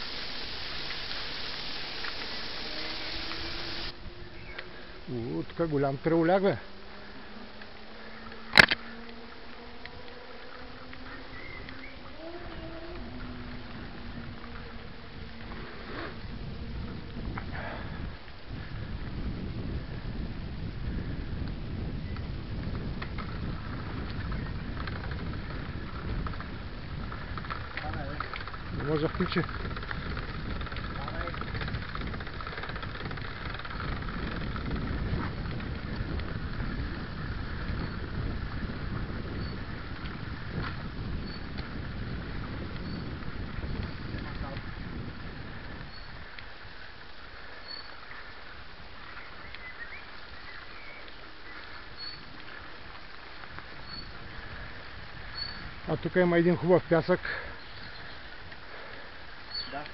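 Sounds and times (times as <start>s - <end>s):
bike rattle: 0.0s - 3.9s, 22.6s - 55.9s
wind on microphone: 0.0s - 5.0s, 10.2s - 59.9s
bicycle tyres rumbling on dirt: 0.0s - 59.9s.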